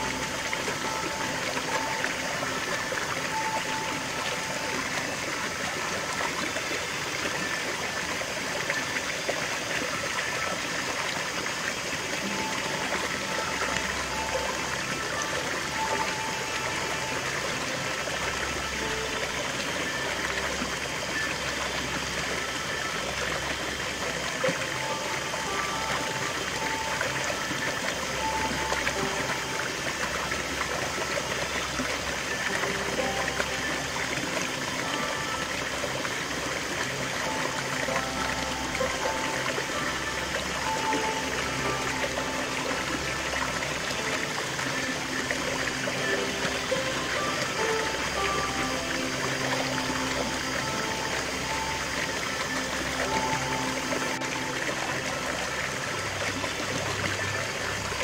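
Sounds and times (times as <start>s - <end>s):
slow background music: 0.0s - 58.0s
small waterfall splashing over rocks: 0.0s - 58.0s.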